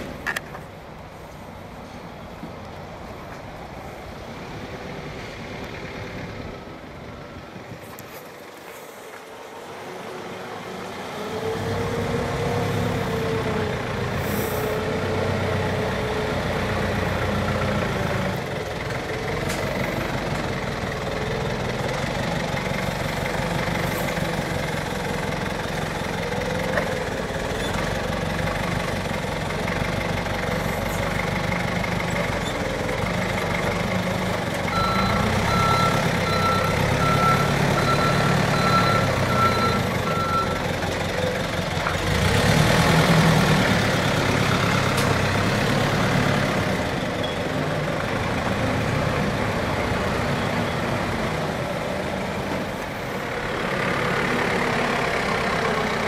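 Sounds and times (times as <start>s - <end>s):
forklift engine revving: 10.6s - 56.0s
reversing alarm beeps: 34.7s - 40.6s.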